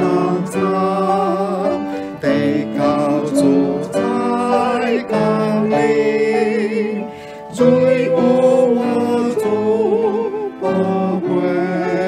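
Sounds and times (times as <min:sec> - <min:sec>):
hymn singing: 0:00.0 - 0:12.0
instrumental accompaniment: 0:00.0 - 0:12.0.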